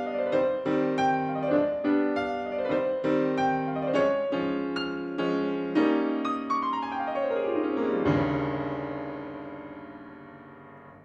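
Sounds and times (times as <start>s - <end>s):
solo piano playing: 0.0s - 11.0s.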